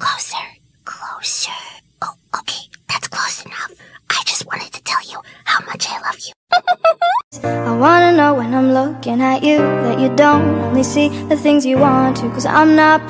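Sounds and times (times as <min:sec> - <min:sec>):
person whispering: 0:00.0 - 0:06.4.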